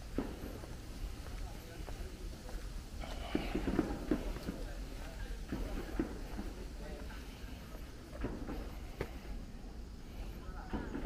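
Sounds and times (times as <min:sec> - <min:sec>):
footsteps on stone paving: 0:00.0 - 0:09.4
indistinct voices: 0:00.6 - 0:11.0.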